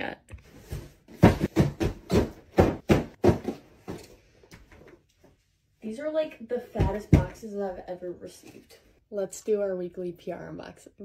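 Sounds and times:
cardboard boxes thudding: 0.7 - 4.0.

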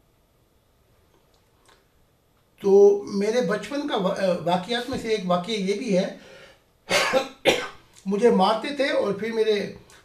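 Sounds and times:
man coughing: 6.9 - 7.9.

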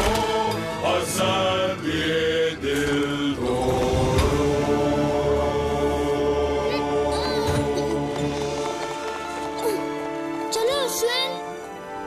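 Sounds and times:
deep male chorus singing: 0.0 - 9.4
low orchestral drone: 0.0 - 10.4.

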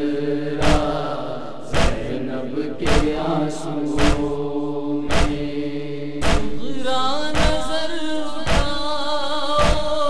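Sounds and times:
solo voice singing: 0.0 - 10.0
voices chanting a lament: 0.0 - 10.0
chest-beating thumps: 0.6 - 2.2, 2.8 - 4.4, 5.0 - 5.6, 6.2 - 6.7, 7.3 - 7.8, 8.4 - 8.8.

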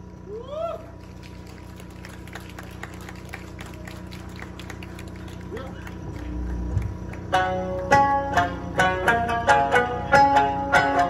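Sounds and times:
steady low hum: 0.0 - 11.0
crowd noise: 0.8 - 8.8
hand claps: 1.0 - 8.0.

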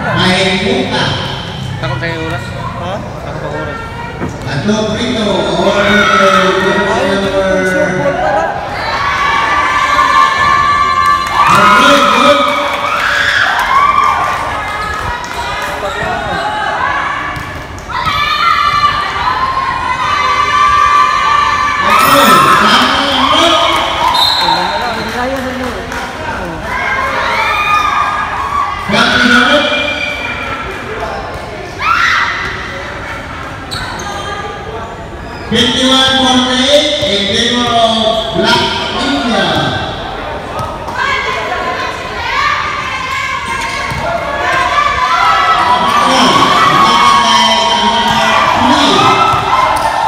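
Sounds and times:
people shouting and cheering: 0.0 - 33.6, 35.5 - 50.0.

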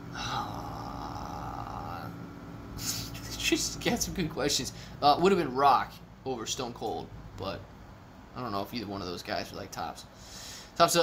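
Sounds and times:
man's breathy uhh: 0.0 - 2.2
short sharp breath: 10.2 - 10.8.

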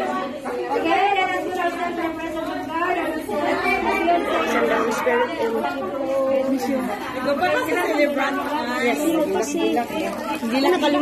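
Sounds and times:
people talking at once: 0.0 - 11.0.

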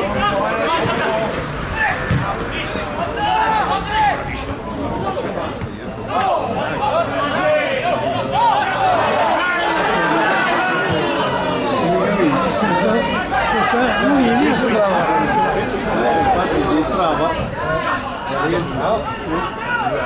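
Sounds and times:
babble of people talking: 0.0 - 20.0.

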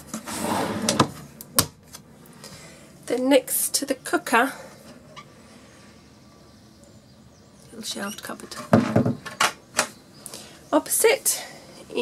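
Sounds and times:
cupboard door sliding rub: 0.2 - 1.3.

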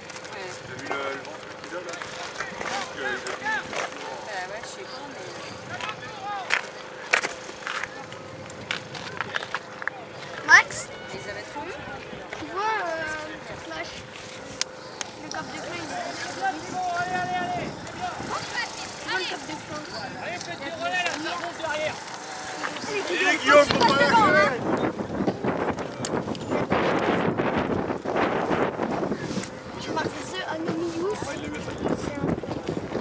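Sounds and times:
people talking and calling out: 0.0 - 33.0.

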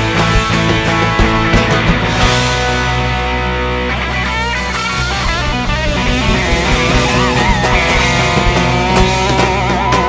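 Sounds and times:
lead electric guitar bends: 0.0 - 10.0
rock band playing: 0.0 - 10.0.

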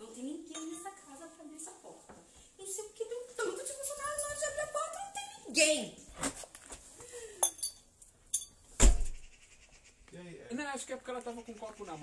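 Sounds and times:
hard objects clinking and knocking: 7.4 - 8.6
low thump: 8.8 - 9.2.

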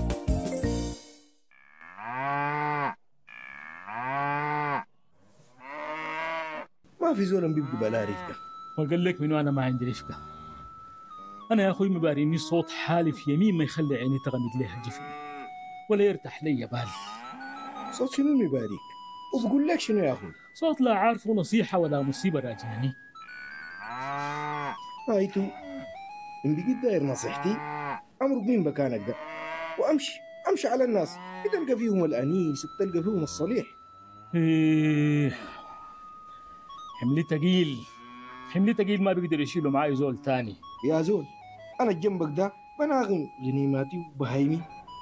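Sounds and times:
cow mooing: 1.8 - 4.9, 5.6 - 6.7, 7.3 - 8.5, 9.9 - 13.2, 14.7 - 15.7, 16.8 - 18.2, 21.8 - 28.1, 28.8 - 36.9, 37.7 - 40.9
music in held notes: 7.2 - 29.1, 29.9 - 45.0.

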